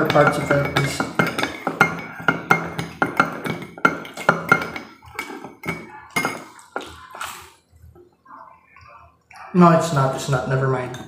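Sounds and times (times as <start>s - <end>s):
spoon clinking in ceramic cup: 0.0s - 6.6s.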